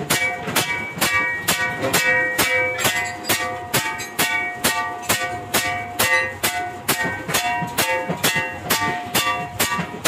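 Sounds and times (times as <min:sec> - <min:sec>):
hammer striking iron pan: 0:00.0 - 0:10.0
pan ringing metallically: 0:00.0 - 0:10.0.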